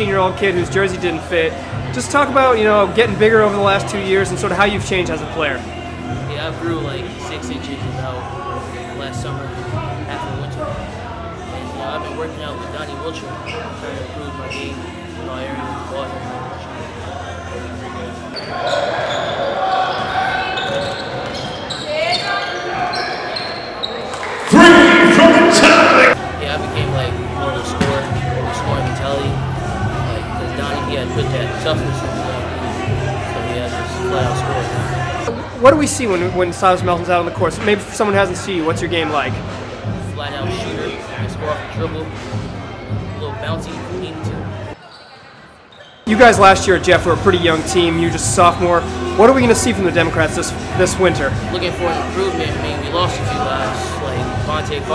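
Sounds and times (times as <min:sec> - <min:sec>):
players' voices echoing: 0:00.0 - 0:44.9, 0:46.0 - 0:54.9
sneakers squeaking on hardwood: 0:18.3 - 0:24.7, 0:44.7 - 0:46.1.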